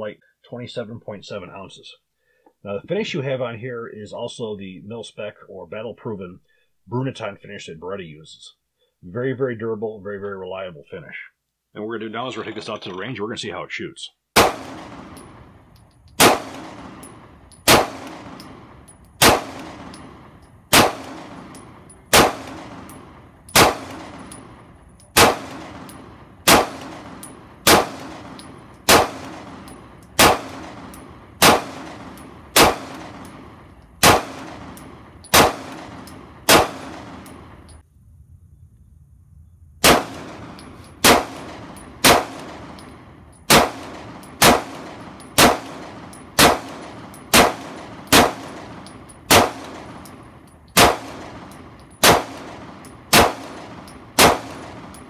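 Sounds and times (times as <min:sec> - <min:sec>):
pistol shots with ringing echo: 0:14.4 - 0:37.7, 0:39.8 - 0:55.0.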